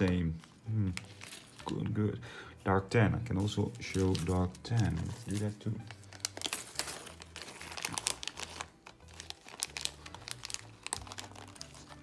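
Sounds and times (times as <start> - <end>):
plastic bag crinkling: 3.3 - 12.0.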